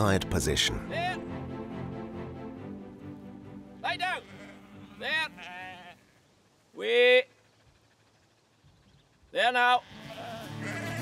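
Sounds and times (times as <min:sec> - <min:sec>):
sheep bleating: 0:03.8 - 0:06.3, 0:09.4 - 0:11.0.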